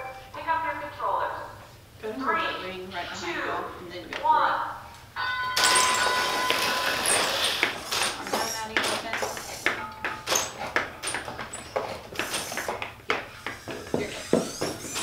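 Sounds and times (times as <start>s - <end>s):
robot motors whirring: 12.1s - 12.8s, 13.4s - 15.0s.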